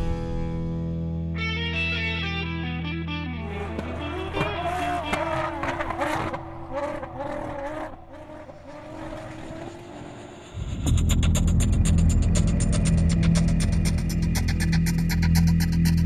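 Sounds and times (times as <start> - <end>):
low hum with fast ticking: 10.6 - 16.0.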